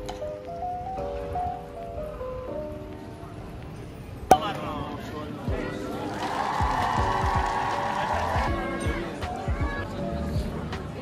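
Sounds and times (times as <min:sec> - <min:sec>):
faint background music: 0:00.0 - 0:11.0
faint murmur of voices: 0:01.0 - 0:11.0.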